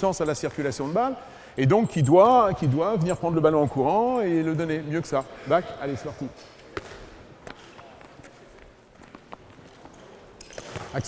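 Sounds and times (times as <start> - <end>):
ball bouncing: 6.7 - 8.3.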